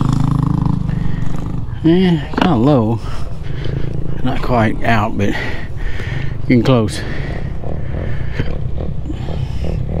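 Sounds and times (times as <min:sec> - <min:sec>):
dirt bike engine idling: 0:00.0 - 0:10.0.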